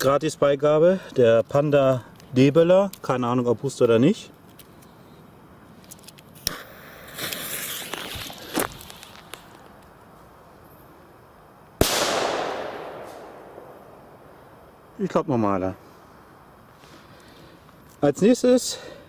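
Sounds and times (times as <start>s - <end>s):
firecracker bang with echo: 11.8s - 14.4s.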